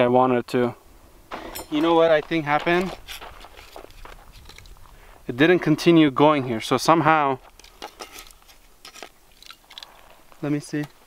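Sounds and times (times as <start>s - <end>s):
light ticks and rustles: 1.3s - 6.7s, 7.3s - 11.0s.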